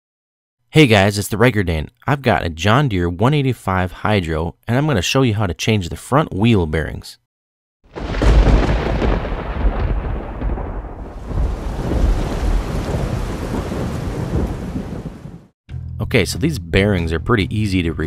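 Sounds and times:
thunder rumbling: 7.9s - 15.5s
rain hissing: 8.0s - 15.5s.

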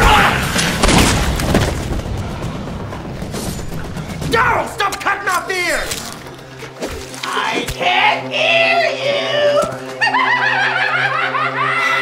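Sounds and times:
man laughing wildly: 10.0s - 12.0s.

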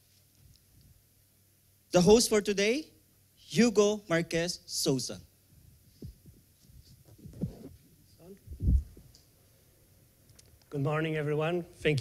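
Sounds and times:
soft low thumps: 6.0s - 7.8s, 8.5s - 9.1s.

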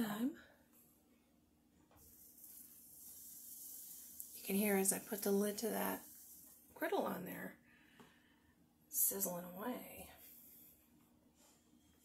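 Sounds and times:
corn sizzling under grill lid: 2.0s - 6.9s.

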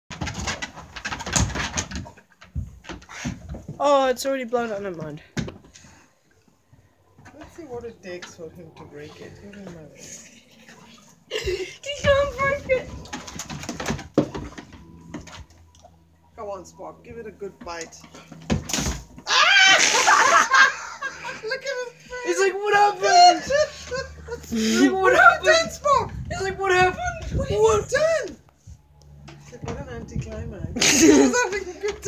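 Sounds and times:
dog tossing rubber balloon on deck: 17.7s - 19.2s.

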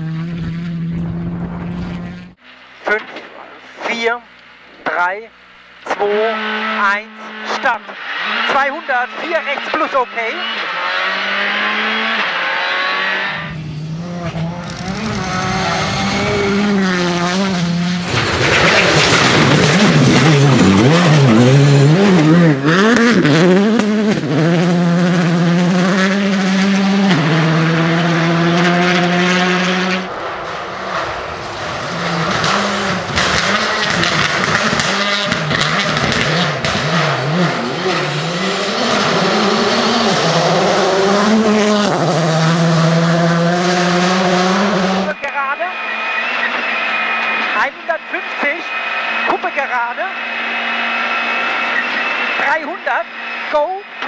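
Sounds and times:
gravel and tyre noise: 0.0s - 54.0s
rally car engine revving: 0.0s - 54.0s.

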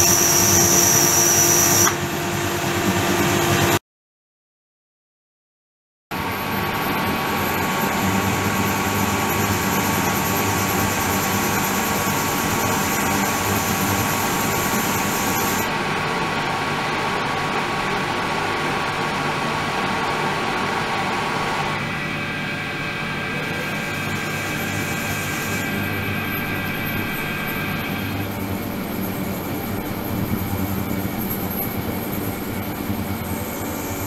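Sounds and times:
pump motor hum: 0.0s - 3.8s, 6.2s - 34.0s.

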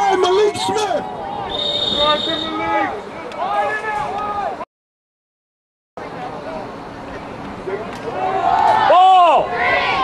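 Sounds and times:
voices on a field: 0.0s - 4.6s, 6.0s - 10.0s
referee's whistle: 1.5s - 2.7s.

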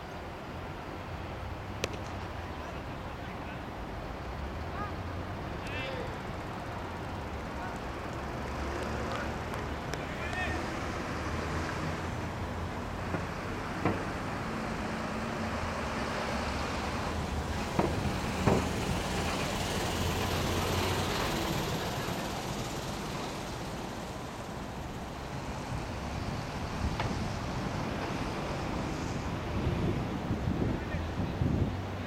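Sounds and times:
distant traffic: 0.0s - 32.0s
sharp knocks: 17.8s - 18.8s
wind on microphone: 25.6s - 32.0s.

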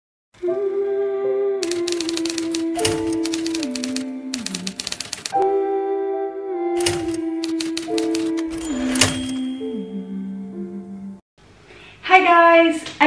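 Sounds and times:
typewriter key clacks: 1.6s - 5.4s, 6.8s - 9.4s.

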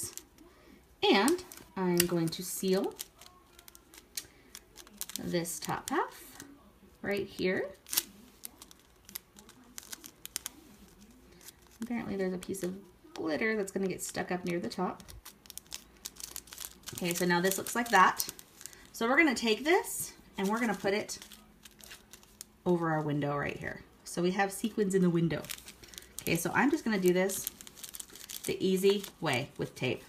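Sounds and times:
plastic pocket crinkling: 1.1s - 6.5s, 7.3s - 12.6s, 13.9s - 22.6s, 25.2s - 29.8s.

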